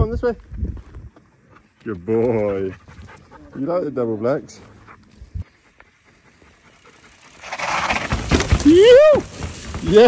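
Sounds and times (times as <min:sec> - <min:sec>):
bike tyre noise on dirt: 0:00.0 - 0:03.3, 0:04.3 - 0:10.0.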